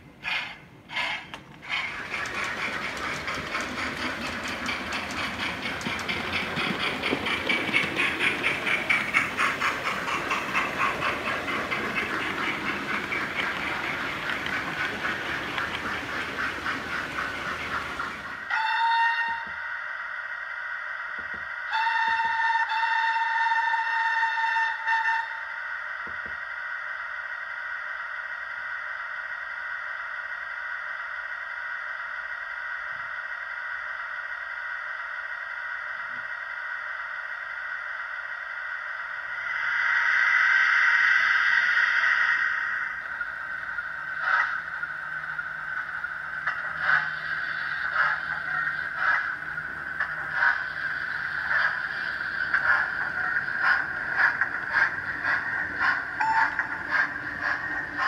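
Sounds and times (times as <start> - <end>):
model steam train running: 0.0 - 58.0
steam hissing: 0.2 - 24.0, 37.8 - 58.0
train whistle blasts: 18.5 - 19.7, 21.7 - 25.6.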